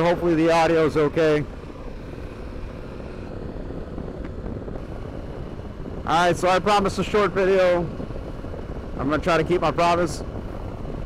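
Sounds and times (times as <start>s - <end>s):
motorcycle engine drone: 0.0s - 11.0s
wind rumble on microphone: 0.0s - 11.0s.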